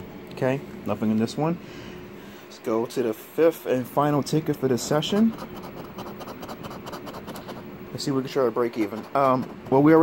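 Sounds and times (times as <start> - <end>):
coin scratching lottery ticket: 4.7 - 10.0.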